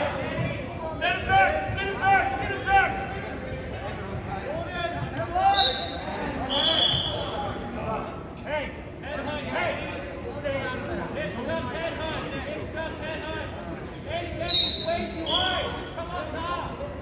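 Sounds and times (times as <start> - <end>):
spectators' voices echoing: 0.0 - 17.0
referee's whistle blast: 5.5 - 7.3, 14.5 - 15.7.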